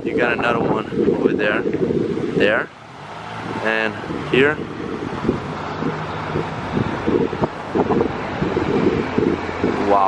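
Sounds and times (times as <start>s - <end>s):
street traffic: 0.0s - 10.0s
wind buffeting microphone: 0.0s - 10.0s.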